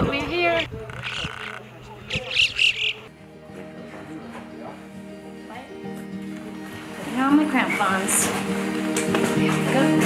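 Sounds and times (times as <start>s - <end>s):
high chirping calls: 0.6s - 3.1s
background music with held tones: 3.1s - 10.0s.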